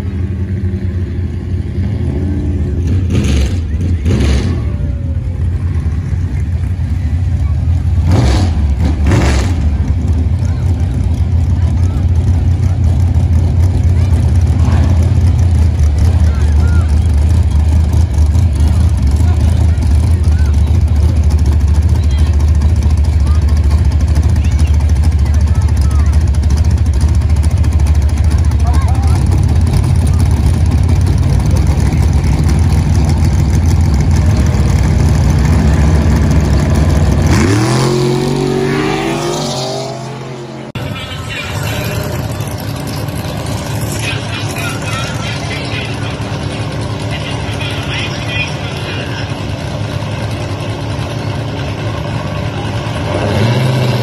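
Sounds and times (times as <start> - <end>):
car engine idling with deep rumble: 0.0 - 54.0
car engine revving and pulling away: 0.0 - 54.0.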